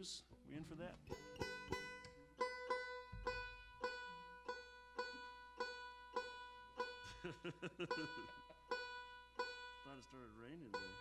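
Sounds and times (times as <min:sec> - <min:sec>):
plucked string instrument note: 0:00.9 - 0:07.0.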